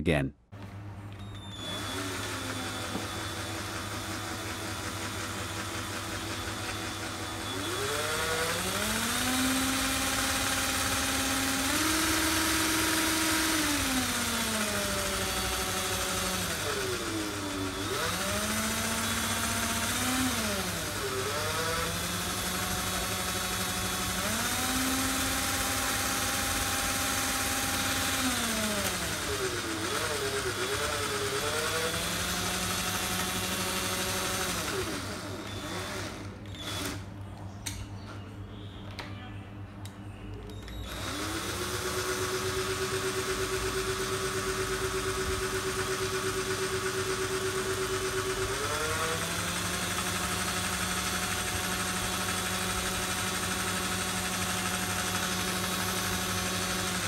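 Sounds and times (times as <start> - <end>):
electric drill motor whining: 1.1 - 37.2, 40.5 - 57.0.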